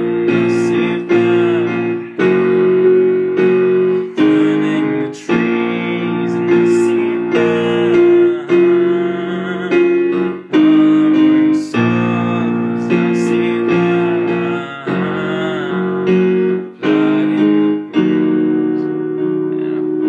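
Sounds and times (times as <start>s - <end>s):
digital piano playing held chords: 0.0s - 20.0s.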